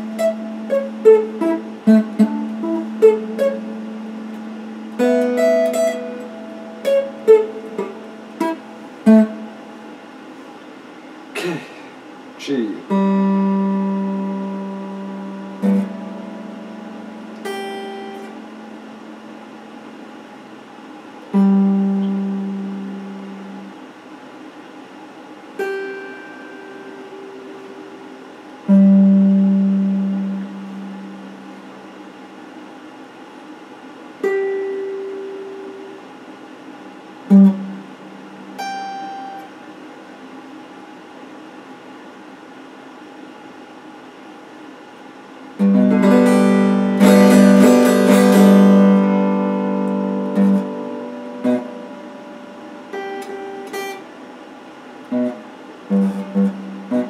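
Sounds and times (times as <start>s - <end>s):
electric guitar notes: 0.0s - 10.2s, 12.4s - 20.3s, 21.2s - 23.9s, 25.6s - 32.2s, 34.2s - 36.2s, 37.2s - 39.6s, 45.6s - 57.0s.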